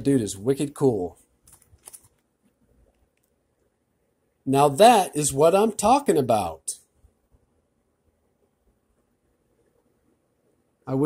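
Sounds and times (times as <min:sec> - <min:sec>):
plastic sheet protector rustling: 0:01.2 - 0:02.6.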